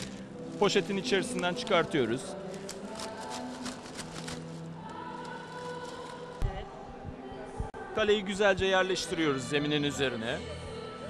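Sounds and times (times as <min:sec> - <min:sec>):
plastic bag crinkling: 0:00.0 - 0:06.5
background music with held notes: 0:00.0 - 0:11.0.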